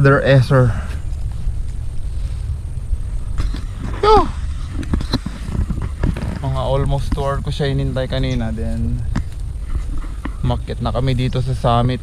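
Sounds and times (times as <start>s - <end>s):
wind buffeting microphone: 0.0s - 12.0s
person exclaiming: 3.9s - 4.4s.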